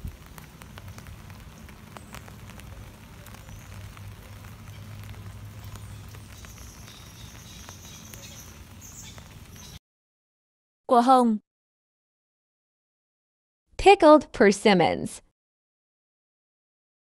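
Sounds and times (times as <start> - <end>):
light rain on foliage: 0.0 - 9.8
small scattered drips: 0.0 - 9.8.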